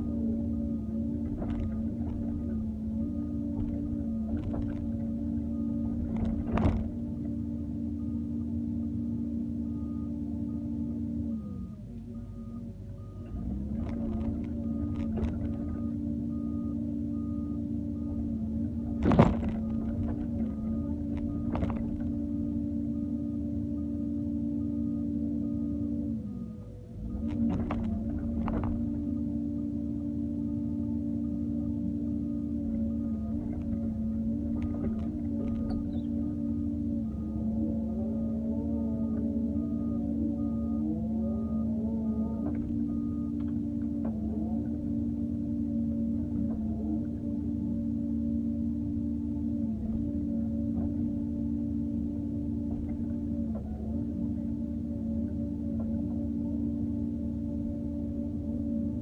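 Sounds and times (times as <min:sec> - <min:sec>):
excavator engine droning hum: 0:00.0 - 0:59.0.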